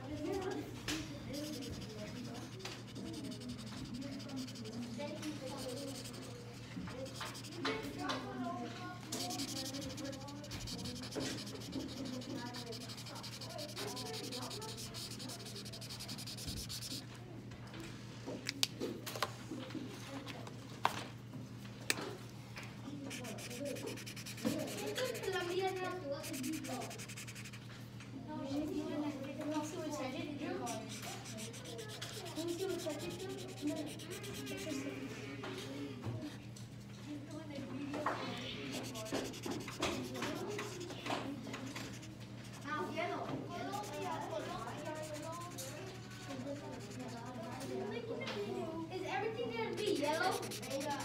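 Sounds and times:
marker scratching on paper: 0:00.0 - 0:08.3, 0:09.0 - 0:17.1, 0:23.1 - 0:27.6, 0:30.5 - 0:34.9, 0:38.4 - 0:43.0, 0:43.6 - 0:47.8, 0:49.6 - 0:51.0
voices talking: 0:00.0 - 0:17.1, 0:28.6 - 0:36.6, 0:37.2 - 0:51.0.

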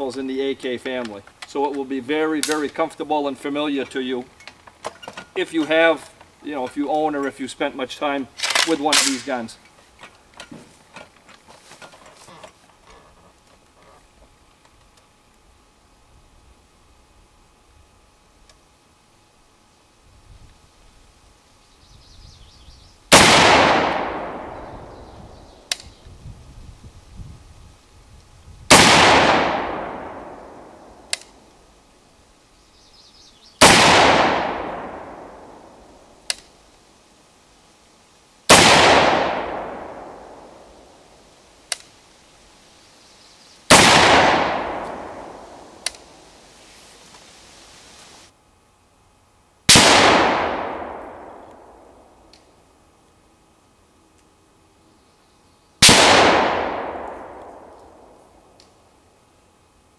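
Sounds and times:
rifle shots with echo: 0:23.1 - 0:25.0, 0:28.7 - 0:31.4, 0:33.6 - 0:36.0, 0:38.5 - 0:41.0, 0:43.7 - 0:46.3, 0:49.7 - 0:52.3, 0:55.8 - 0:58.6.

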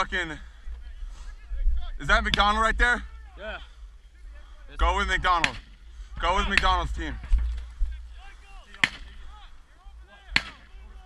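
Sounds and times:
wind rumbling on microphone: 0:03.7 - 0:09.8
distant shouting: 0:07.9 - 0:11.0
gunshots: 0:08.7 - 0:09.2, 0:10.3 - 0:10.7.

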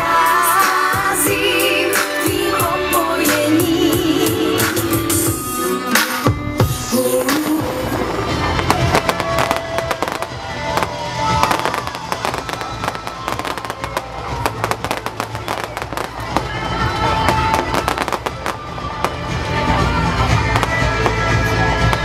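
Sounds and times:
music playing: 0:00.0 - 0:22.0
fireworks bangs and crackles: 0:07.2 - 0:22.0.

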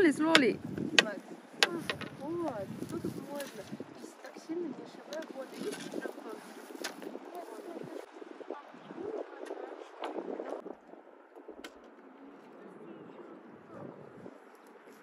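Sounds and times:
indistinct voices talking: 0:00.0 - 0:10.0
sharp clicks or taps: 0:00.4 - 0:02.1.

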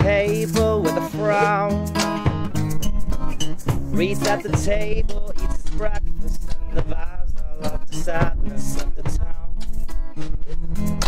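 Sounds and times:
acoustic pop band playing: 0:00.0 - 0:11.0.

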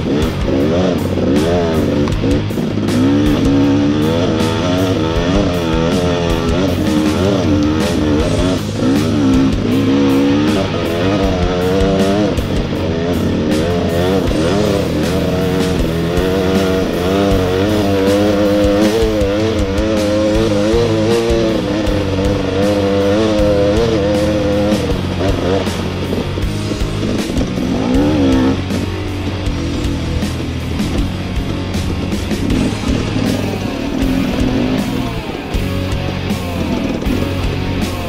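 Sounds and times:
dirt bike engine revving: 0:00.0 - 0:38.0
guitar rock music: 0:00.0 - 0:38.0.

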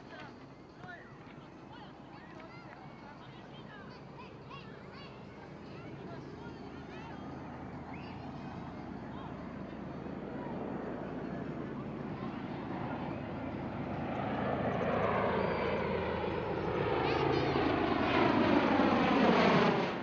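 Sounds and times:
tiltrotor aircraft flying overhead: 0:00.0 - 0:20.0.

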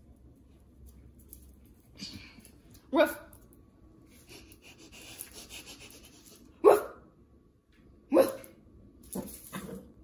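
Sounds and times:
puppy barking: 0:06.6 - 0:07.0.

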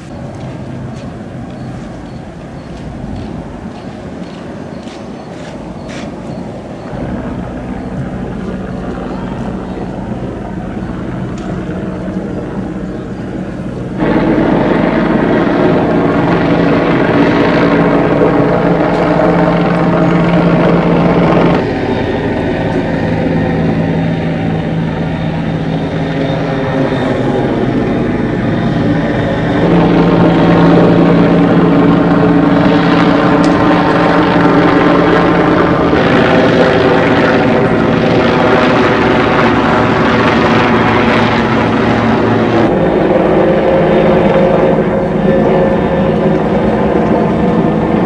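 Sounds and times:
steady mechanical drone: 0:00.0 - 0:48.0
rushing noise: 0:12.1 - 0:48.0.

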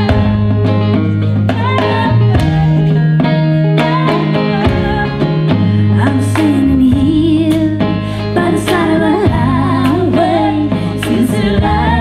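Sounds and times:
drum kit: 0:00.0 - 0:12.0
electric bass line: 0:00.0 - 0:12.0.

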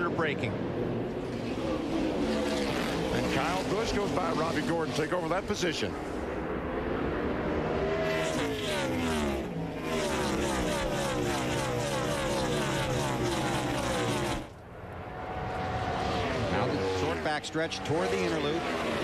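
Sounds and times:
racing cars passing at speed: 0:00.0 - 0:19.0.

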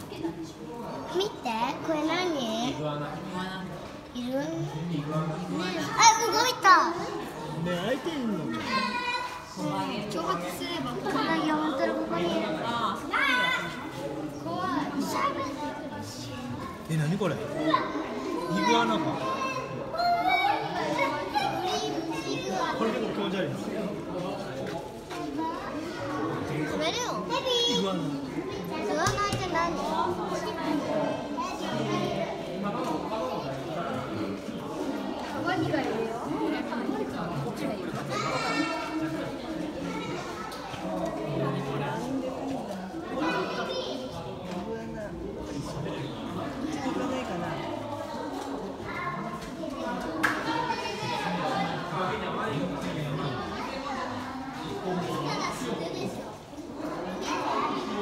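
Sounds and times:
children chattering: 0:00.0 - 0:58.0.

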